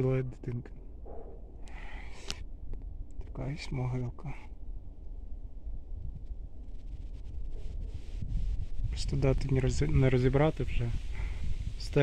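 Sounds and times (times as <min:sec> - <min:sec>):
wind rumble on microphone: 0:00.0 - 0:12.0
faint rustling: 0:06.0 - 0:12.0.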